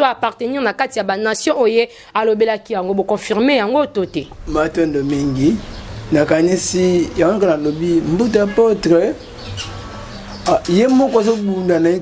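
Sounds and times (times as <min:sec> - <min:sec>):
man speaking: 0:04.4 - 0:09.2, 0:10.4 - 0:12.0.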